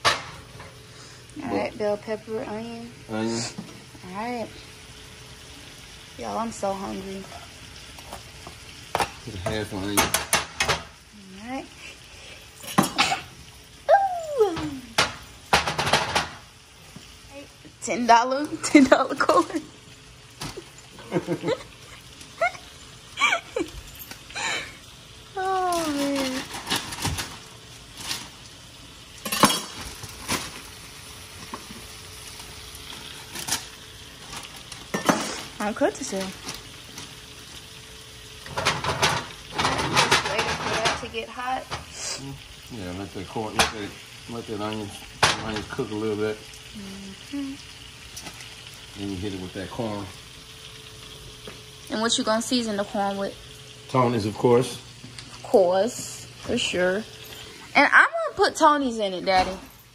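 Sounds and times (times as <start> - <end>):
faint sizzle: 0.0 - 59.9
metal utensil clinking on skillet: 29.2 - 29.8, 34.9 - 35.4.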